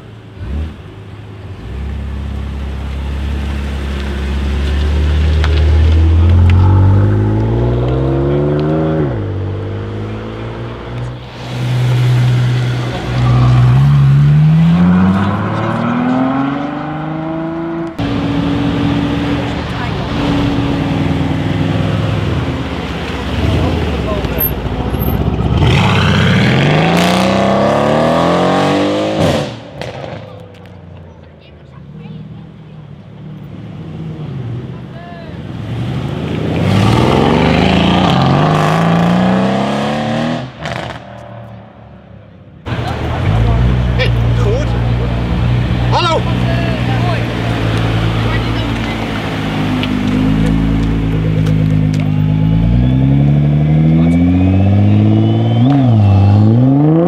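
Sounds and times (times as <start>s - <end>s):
performance cars accelerating hard: 4.0s - 30.6s, 33.4s - 41.7s, 42.7s - 57.0s.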